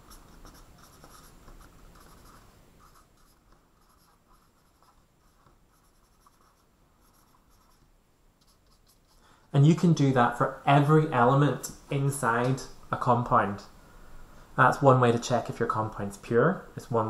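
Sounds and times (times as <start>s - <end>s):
marker writing on whiteboard: 0.0s - 9.3s.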